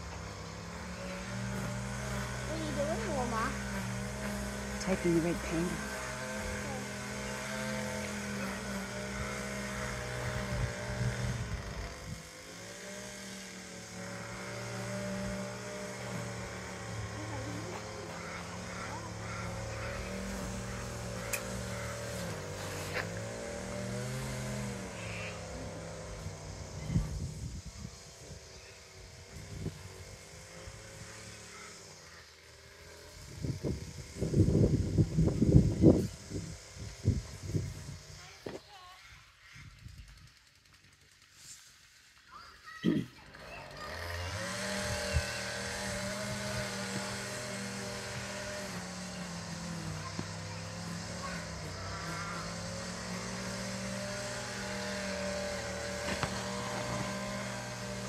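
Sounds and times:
engine running: 0.0s - 58.0s.

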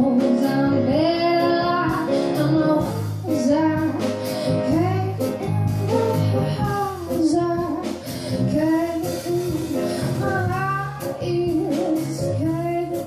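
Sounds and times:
drums: 0.0s - 13.0s
piano: 0.0s - 13.0s
woman singing into microphone: 0.0s - 13.0s.

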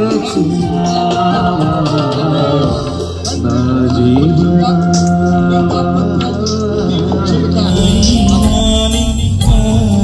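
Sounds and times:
electronic keyboard chords: 7.6s - 10.0s
gliding melodic line: 7.7s - 10.0s
hand drum and percussion beat: 7.7s - 10.0s.

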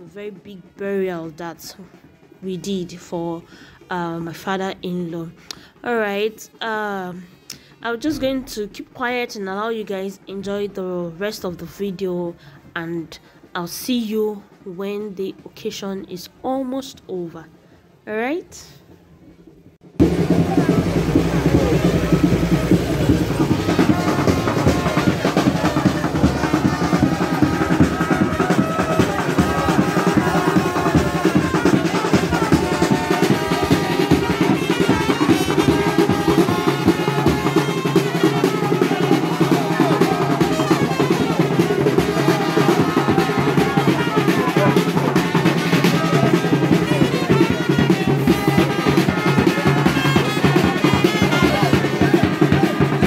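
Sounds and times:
marching band playing: 19.6s - 53.0s
snare and bass drums: 19.9s - 53.0s.

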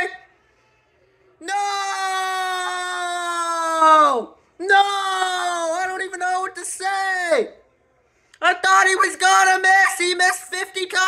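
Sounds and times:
man wailing: 8.7s - 10.6s.

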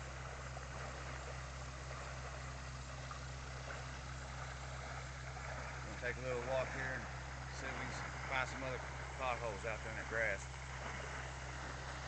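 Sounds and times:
water pump engine humming: 0.0s - 12.0s.

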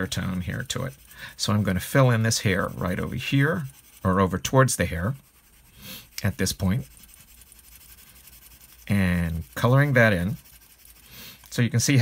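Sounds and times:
man talking: 0.0s - 5.2s, 6.2s - 6.9s, 8.9s - 10.4s, 11.5s - 12.0s
pencil scratching on paper: 0.0s - 12.0s.

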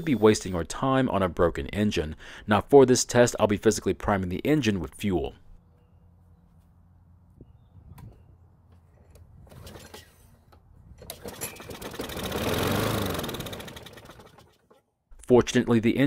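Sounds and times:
lawn mower engine running: 8.8s - 14.8s.

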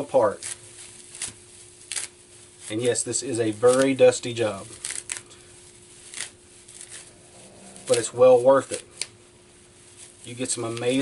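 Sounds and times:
bark fibers tearing: 0.0s - 11.0s
fibers rustling: 0.4s - 11.0s.

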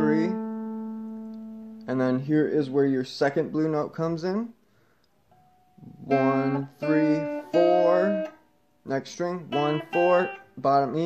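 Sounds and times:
electric guitar note plucked: 0.0s - 1.9s, 5.3s - 8.4s, 9.4s - 10.6s.

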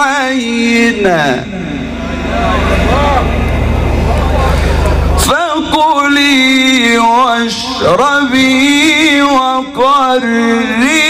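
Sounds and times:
religious recitation: 0.0s - 4.6s, 5.2s - 11.0s
low pulsing rumble: 0.4s - 8.6s.

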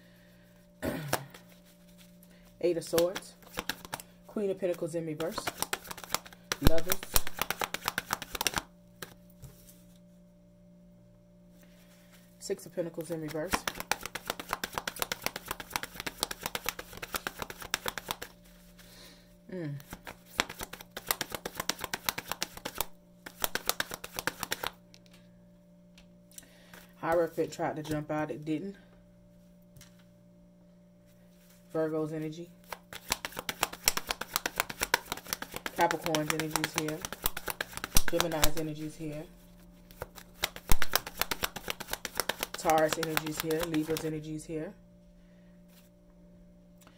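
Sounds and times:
deck of cards being shuffled: 1.1s - 10.1s, 12.9s - 19.0s, 19.7s - 25.2s, 32.6s - 44.2s.

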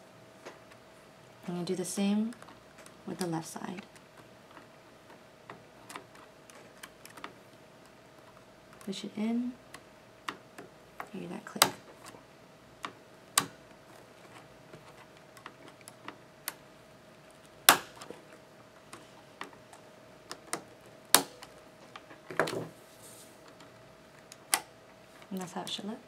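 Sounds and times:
sharp plastic clicks: 12.8s - 16.6s, 17.3s - 22.6s, 23.5s - 24.7s.

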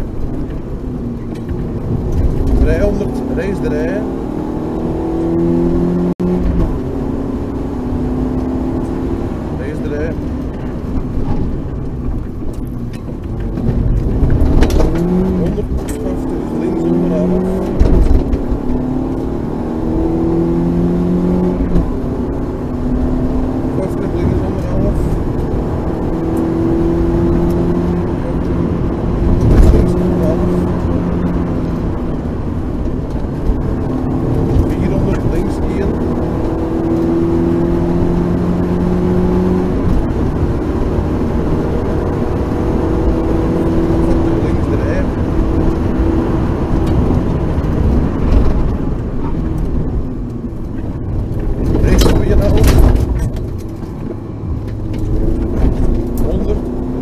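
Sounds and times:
rally car engine revving: 0.0s - 57.0s
tyre and road noise: 0.0s - 57.0s.

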